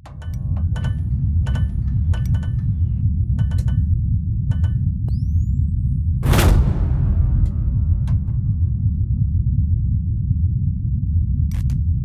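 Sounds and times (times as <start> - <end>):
low rumbling drone: 0.0 - 12.0.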